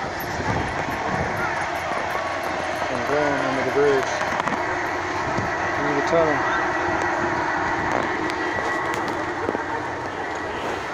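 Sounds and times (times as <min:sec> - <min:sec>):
model train running on track: 0:00.0 - 0:10.9.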